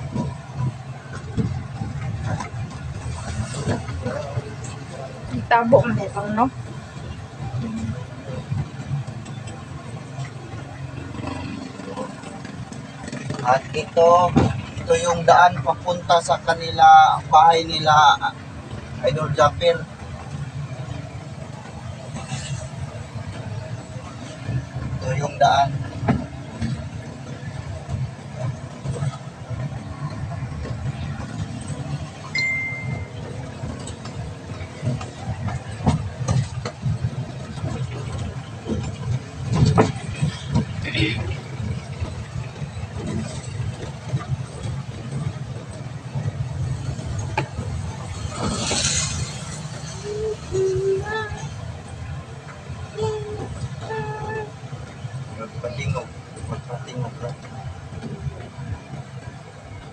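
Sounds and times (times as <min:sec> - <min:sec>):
engine and road rumble: 0:00.0 - 0:59.9
short high beep: 0:32.4 - 0:33.2.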